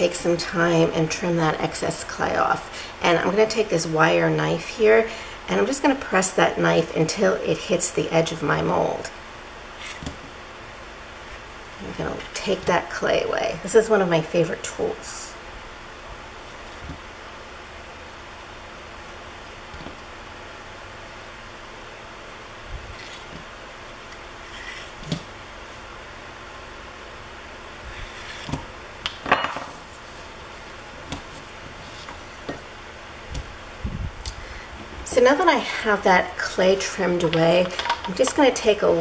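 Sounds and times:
room hum: 0.0s - 39.0s.

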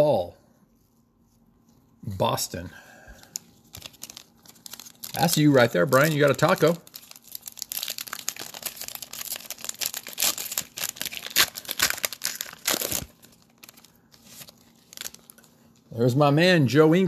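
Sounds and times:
foil wrapper tearing and crinkling: 3.3s - 15.5s.

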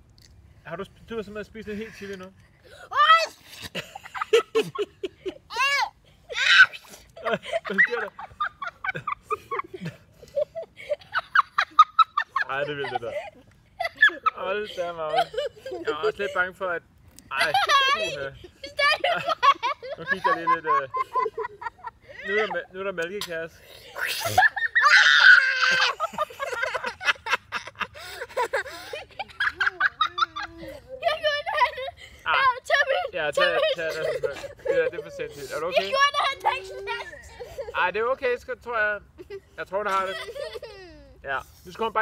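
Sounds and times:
boy giggling: 2.9s - 16.6s, 17.3s - 38.1s, 39.1s - 41.2s
man laughing: 3.7s - 5.5s, 7.2s - 16.5s, 17.3s - 32.0s, 33.2s - 36.0s, 39.2s - 41.0s
girl crying out in pain: 5.5s - 7.0s, 24.0s - 26.1s.

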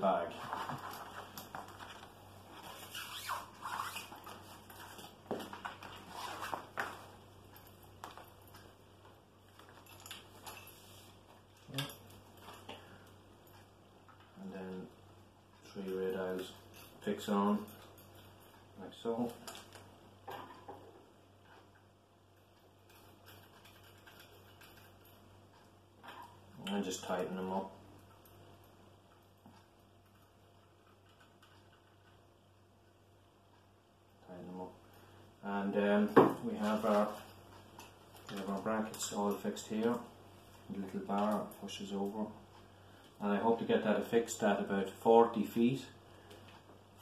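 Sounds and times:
faint ticks and rustles: 0.0s - 47.0s.

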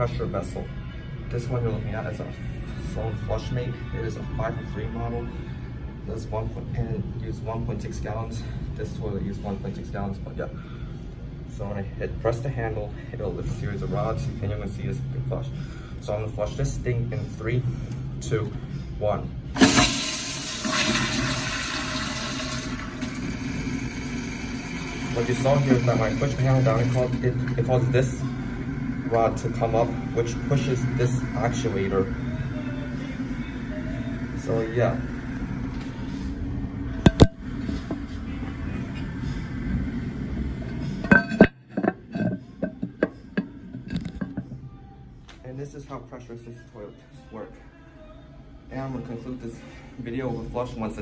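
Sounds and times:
background music: 0.0s - 51.0s
toilet flushing with rushing whoosh: 19.6s - 32.4s.

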